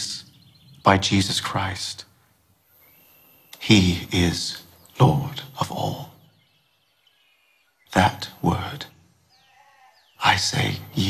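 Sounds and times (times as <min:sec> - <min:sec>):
man speaking: 0:00.0 - 0:02.2, 0:03.6 - 0:06.2, 0:07.9 - 0:09.0, 0:10.2 - 0:11.0
faint high chirping tones: 0:00.0 - 0:11.0.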